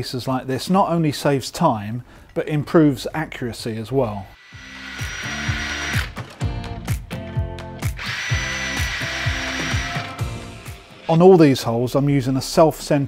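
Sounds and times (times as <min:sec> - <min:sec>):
cordless drill whining: 0:04.4 - 0:06.3, 0:07.8 - 0:11.1.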